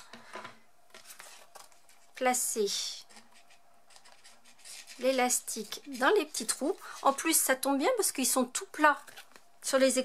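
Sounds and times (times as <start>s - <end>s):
card stock rubbing and rustling: 0.9s - 2.2s, 3.1s - 7.5s.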